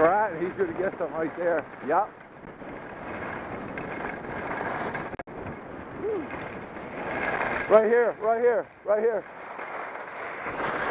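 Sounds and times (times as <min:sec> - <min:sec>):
skis sliding on snow: 0:00.0 - 0:05.2, 0:06.0 - 0:10.9
wind rushing over camera: 0:00.0 - 0:10.9.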